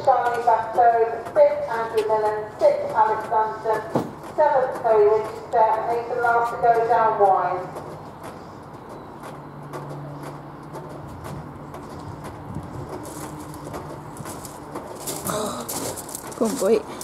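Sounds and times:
horse hooves on turf: 0:00.0 - 0:17.0.

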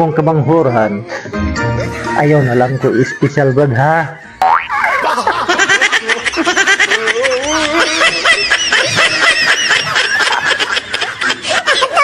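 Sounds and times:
laughter: 0:01.8 - 0:03.6, 0:04.7 - 0:12.0.

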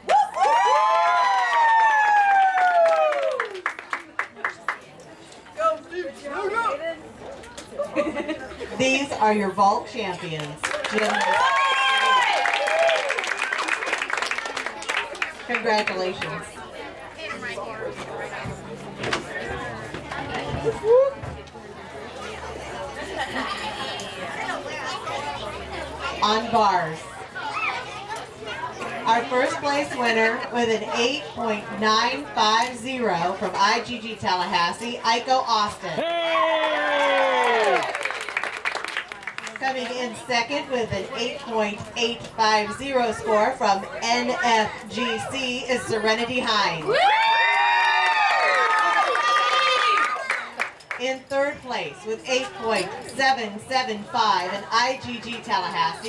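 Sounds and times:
crowd chatter: 0:00.0 - 0:56.0
scattered clapping: 0:02.3 - 0:04.8, 0:10.4 - 0:16.4, 0:36.6 - 0:39.6, 0:47.8 - 0:51.0
high voices cheering: 0:36.0 - 0:38.0.

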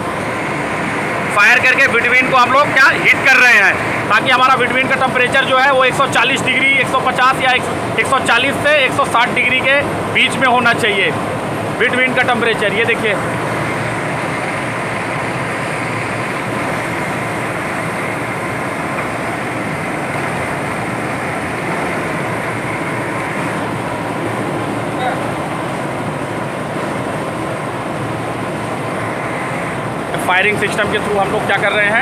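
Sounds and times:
blower burner rushing: 0:00.0 - 0:32.0
faint steady whine: 0:00.0 - 0:32.0.

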